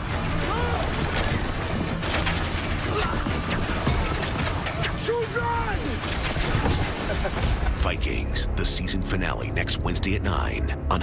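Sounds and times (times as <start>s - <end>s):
music: 0.0s - 11.0s
people shouting: 0.2s - 1.4s, 2.8s - 6.9s
battle clattering: 0.3s - 7.9s.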